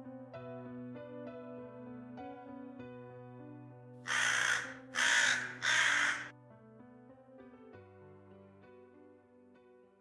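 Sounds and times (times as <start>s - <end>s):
soft piano music: 0.0s - 10.0s
crow cawing: 4.1s - 6.3s.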